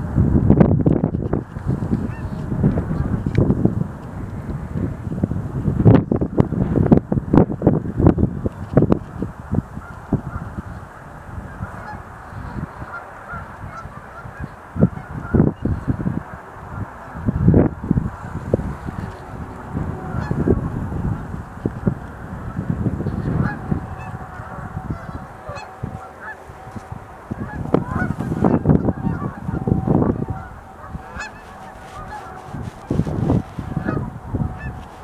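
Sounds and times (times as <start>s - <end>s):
cranes calling: 18.1s - 35.0s.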